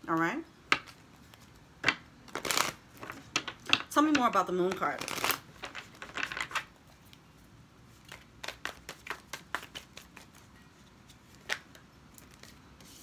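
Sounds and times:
cards being shuffled: 0.7 - 7.2, 7.9 - 13.0.

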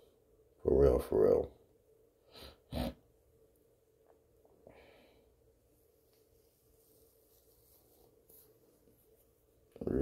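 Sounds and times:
faint steady hum: 0.0 - 10.0
faint rustle: 5.7 - 10.0.

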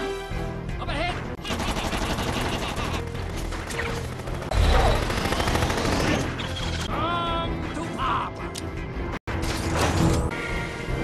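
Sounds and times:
action music: 0.0 - 11.0
rapid gunfire-like cracks: 1.4 - 6.4.

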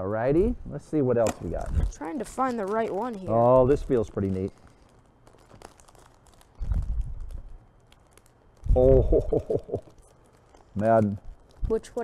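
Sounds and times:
faint crackles: 0.9 - 12.0
plastic packets crinkling and tearing: 1.3 - 12.0.

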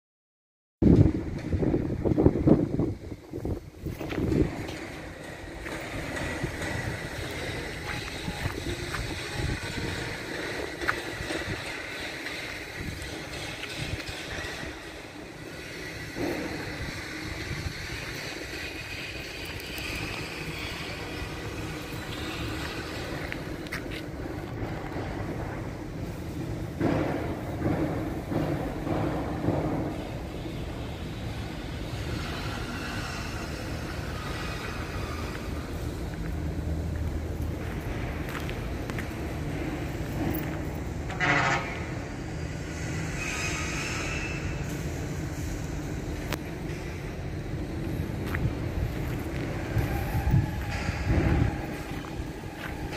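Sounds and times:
vehicle rumble: 0.8 - 52.9.

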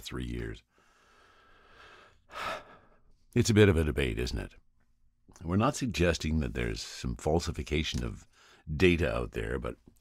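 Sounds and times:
man breathing: 0.6 - 3.2.

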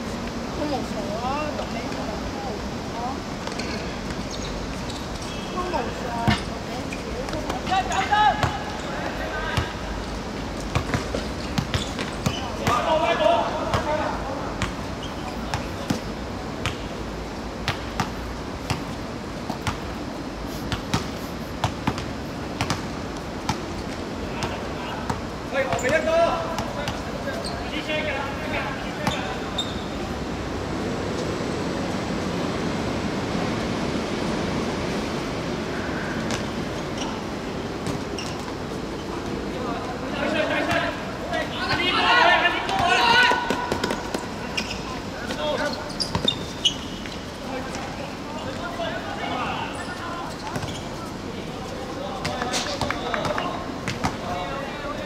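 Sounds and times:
background noise: 0.0 - 55.0
football kicked and bouncing: 20.7 - 22.9
players shouting: 39.9 - 44.6.

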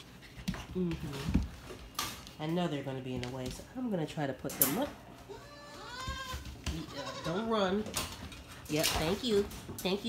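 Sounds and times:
baby goat bleating: 5.3 - 7.5.

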